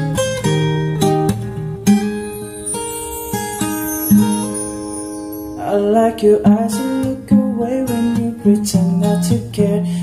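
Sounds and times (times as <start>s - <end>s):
fingerpicked acoustic guitar: 0.0s - 10.0s.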